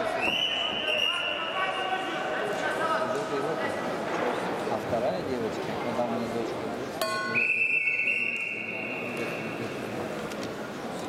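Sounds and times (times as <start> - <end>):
crowd murmur: 2.2 - 11.0
referee's whistle blast: 7.2 - 9.3.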